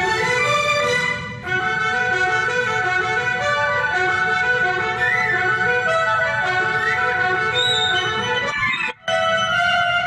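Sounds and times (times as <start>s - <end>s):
orchestral music with held chords: 0.0s - 10.0s.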